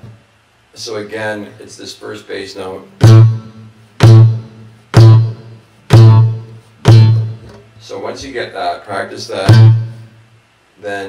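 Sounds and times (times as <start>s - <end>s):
acoustic guitar string plucked with thump: 3.0s - 7.6s, 9.4s - 10.1s.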